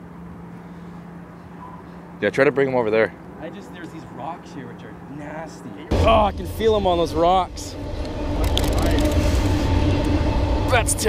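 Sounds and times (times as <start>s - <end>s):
freight train rumbling on bridge: 5.9s - 11.0s.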